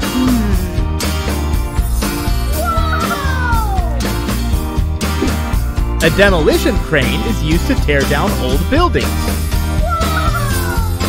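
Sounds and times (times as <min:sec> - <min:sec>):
upbeat guitar music with beat: 0:00.0 - 0:11.0.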